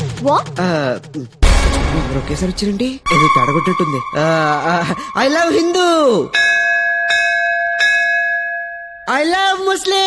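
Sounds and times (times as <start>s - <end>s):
person speaking: 0.2s - 6.4s
metal bell ringing: 3.1s - 9.5s.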